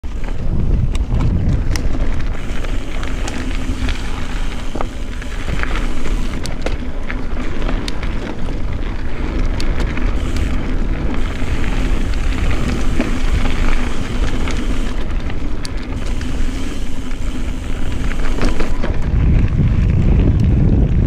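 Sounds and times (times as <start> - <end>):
bike clicks and rattles: 0.0 - 21.0
bike tyres rolling over dirt: 0.0 - 21.0
wind rumble on microphone: 0.0 - 21.0.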